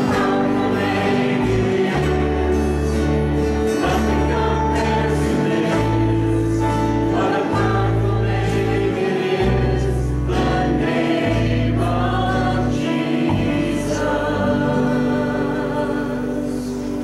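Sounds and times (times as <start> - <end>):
voices singing together: 0.0 - 17.0
worship band playing: 0.0 - 17.0.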